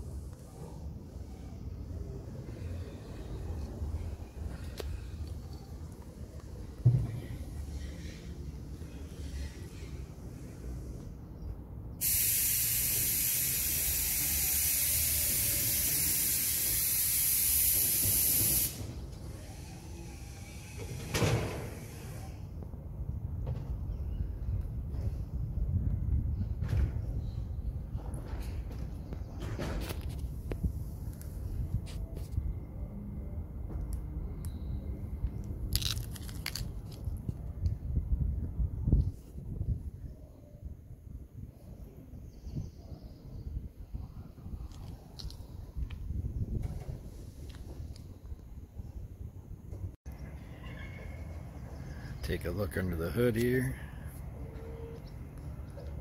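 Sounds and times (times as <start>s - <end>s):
loud steady hiss: 12.0s - 22.5s.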